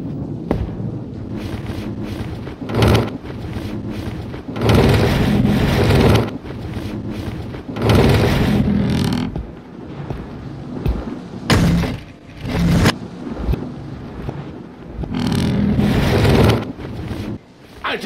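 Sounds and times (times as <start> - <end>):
thunder rumbling: 0.0 - 18.0
wind gusting: 0.0 - 18.0.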